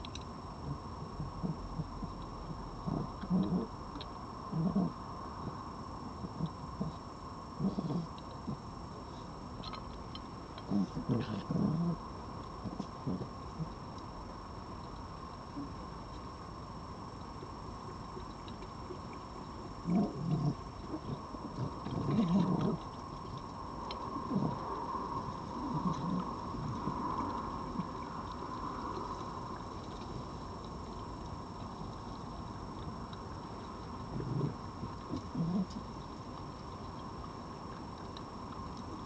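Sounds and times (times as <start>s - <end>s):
foxes making low sounds: 0.6s - 3.8s, 4.5s - 5.6s, 7.6s - 8.6s, 10.6s - 12.0s, 19.8s - 22.9s, 24.1s - 28.1s, 34.1s - 35.9s.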